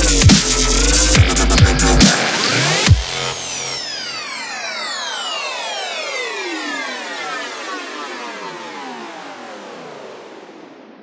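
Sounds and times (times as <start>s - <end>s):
synthesizer tone sliding down: 0.7s - 11.0s.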